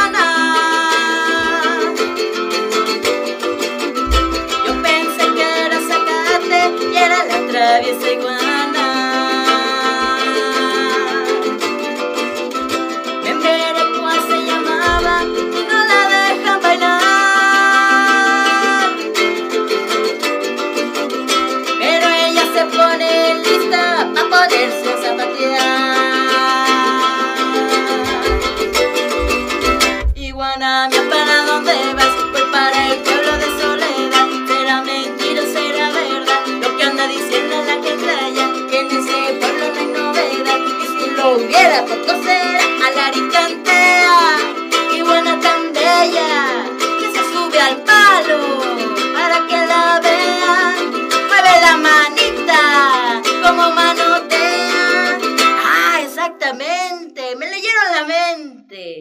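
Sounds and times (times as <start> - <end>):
woman singing: 0.0 - 12.0, 12.6 - 20.2, 21.3 - 59.0
small guitar strumming: 0.0 - 56.4.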